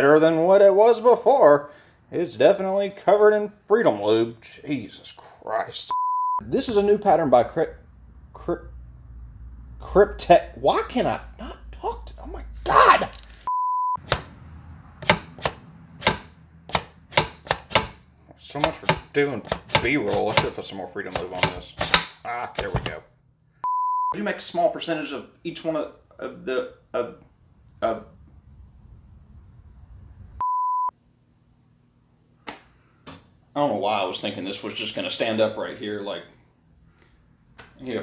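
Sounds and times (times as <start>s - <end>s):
censor bleep: 5.9s - 6.4s, 13.5s - 14.0s, 23.6s - 24.2s, 30.4s - 30.9s.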